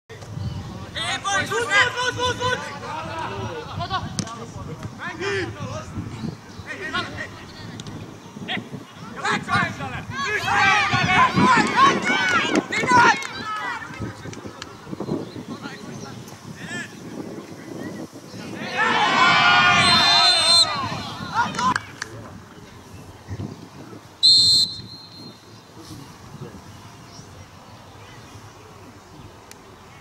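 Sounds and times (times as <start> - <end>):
players shouting: 8.6 - 14.2, 18.4 - 22.0
referee's whistle blast: 19.8 - 20.8, 24.2 - 25.4.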